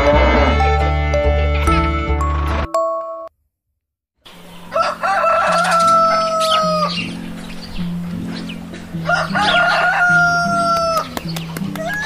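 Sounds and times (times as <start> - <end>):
background music with low melody: 0.0 - 3.3, 4.4 - 12.0
rooster crowing: 4.3 - 7.4, 9.0 - 12.0.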